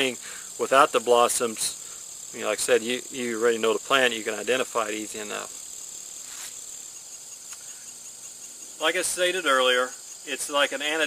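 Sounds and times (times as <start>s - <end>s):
insect chorus trilling: 0.0s - 11.0s.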